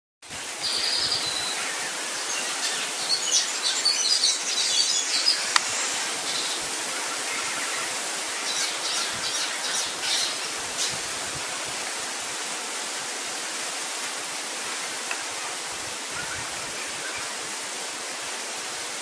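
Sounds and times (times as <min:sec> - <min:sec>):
steady hiss: 0:00.2 - 0:19.0.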